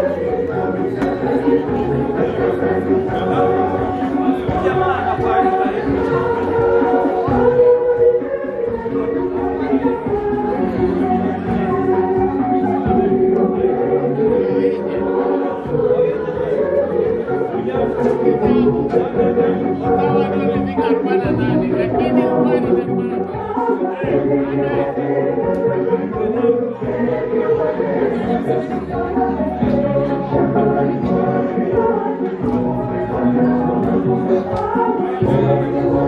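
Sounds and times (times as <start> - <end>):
choir singing: 0.0 - 36.0.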